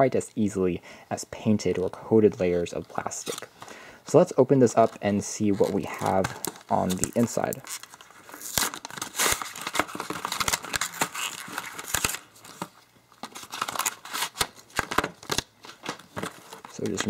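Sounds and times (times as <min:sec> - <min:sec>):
cardboard and plastic rustling: 0:04.7 - 0:17.0.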